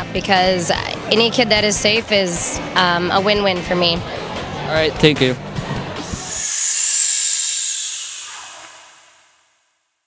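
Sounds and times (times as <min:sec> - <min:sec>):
high hissing whoosh: 0:06.0 - 0:09.8.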